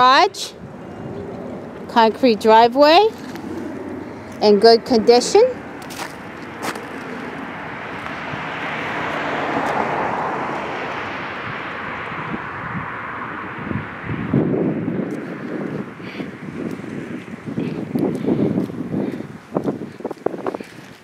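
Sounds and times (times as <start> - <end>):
car passing: 0.0 - 21.0
wind gusts on microphone: 0.0 - 21.0.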